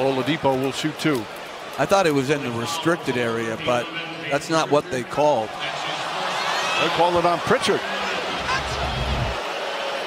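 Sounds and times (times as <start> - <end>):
crowd voices din: 0.0 - 10.0.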